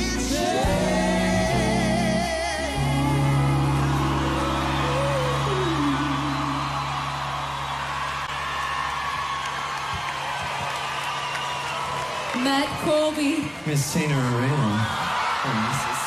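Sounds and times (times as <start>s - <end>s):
band holding low chord: 0.0s - 8.7s
crowd cheering and whooping: 0.0s - 16.0s.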